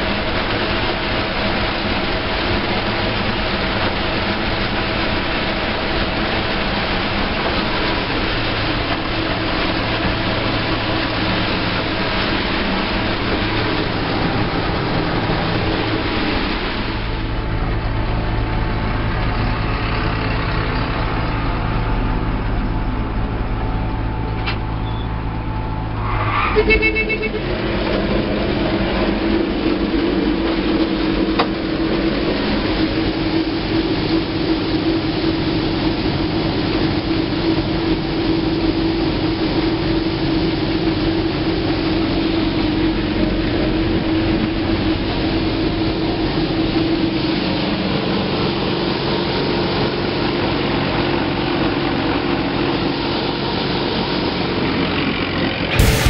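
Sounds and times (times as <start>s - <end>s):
grain pouring from auger: 0.0s - 23.9s, 55.6s - 56.0s
combine harvester engine running: 0.0s - 56.0s
short high tone: 26.0s - 27.5s.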